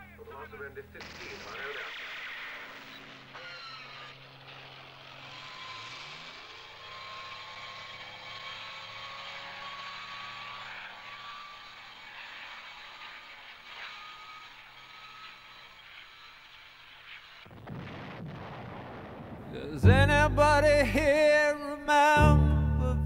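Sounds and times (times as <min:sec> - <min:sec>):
engine drone sliding upward: 0:02.6 - 0:12.8.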